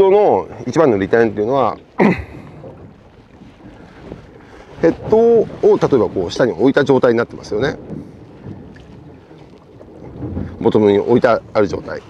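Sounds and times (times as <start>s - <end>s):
low background noise on boat: 0.0s - 12.0s
wind on microphone: 0.0s - 12.0s.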